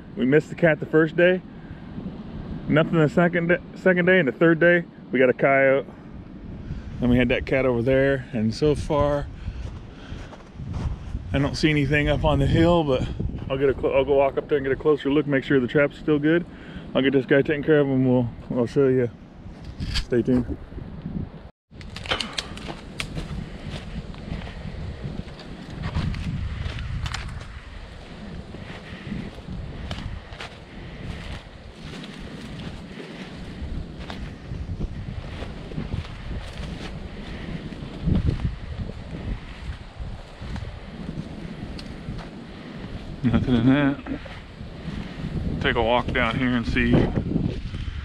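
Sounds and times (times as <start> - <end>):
wind buffeting microphone: 0.0 - 48.0
footsteps crunching through leaves: 22.5 - 39.0.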